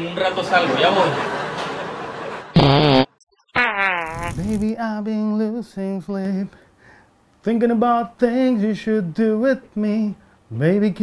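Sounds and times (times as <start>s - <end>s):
loud low fart: 2.6s - 4.7s.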